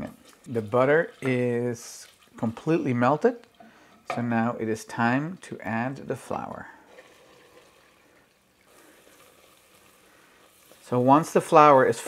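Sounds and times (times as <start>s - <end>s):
wooden spoon stirring: 0.0s - 4.4s, 8.7s - 12.0s
butter sizzling in saucepan: 6.3s - 12.0s.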